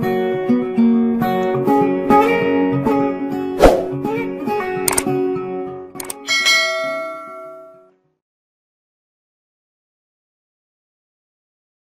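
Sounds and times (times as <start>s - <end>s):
quick clicks: 4.9s - 5.1s, 6.0s - 6.2s
notification bell ding: 6.2s - 7.9s.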